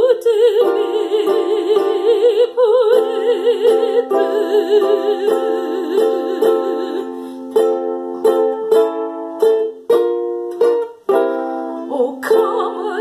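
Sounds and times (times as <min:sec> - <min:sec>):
woman singing with vibrato: 0:00.0 - 0:07.5, 0:11.8 - 0:13.0
plucked chords: 0:00.0 - 0:13.0.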